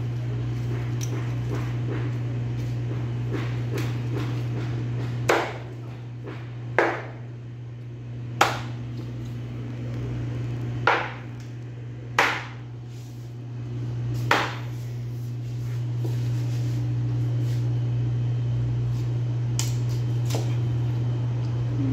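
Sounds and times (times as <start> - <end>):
cleaver chopping on cutting board: 2.9 - 7.2, 10.8 - 11.2, 12.2 - 12.6, 14.2 - 14.7
low hum: 6.2 - 21.9.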